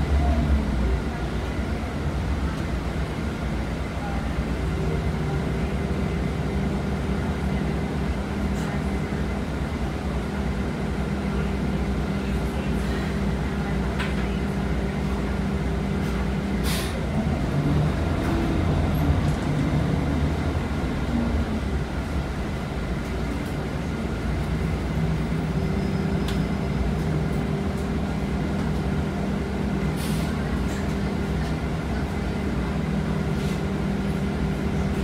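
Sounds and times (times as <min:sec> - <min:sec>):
bus drivetrain hum and rumble: 0:00.0 - 0:35.0.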